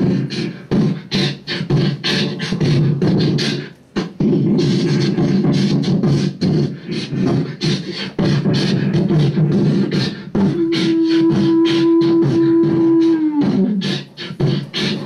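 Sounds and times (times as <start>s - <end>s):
beatboxing clicks and hisses: 0.0s - 15.0s.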